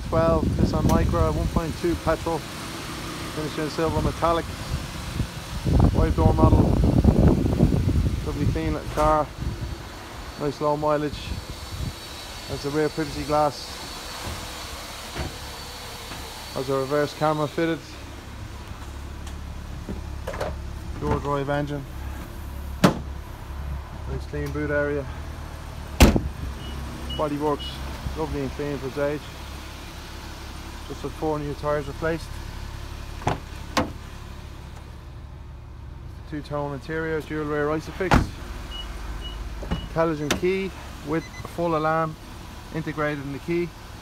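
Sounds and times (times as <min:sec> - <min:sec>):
car engine idling: 0:00.0 - 0:44.0
outdoor rumble and hiss: 0:00.0 - 0:44.0.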